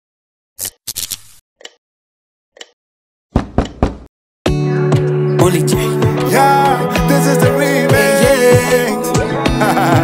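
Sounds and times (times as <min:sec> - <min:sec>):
sharp knocks: 0:03.3 - 0:04.1
music with bass and chords: 0:04.5 - 0:10.0.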